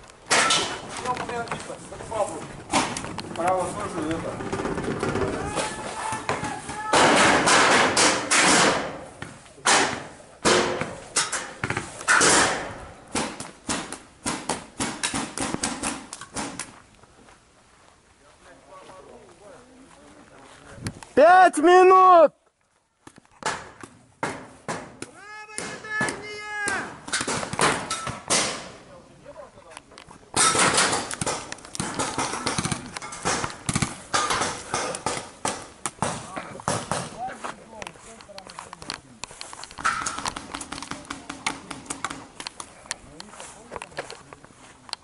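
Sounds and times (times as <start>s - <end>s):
rustling noise: 0.0s - 6.8s, 8.9s - 21.2s, 31.1s - 45.0s
people shouting: 5.3s - 7.3s, 25.1s - 27.0s.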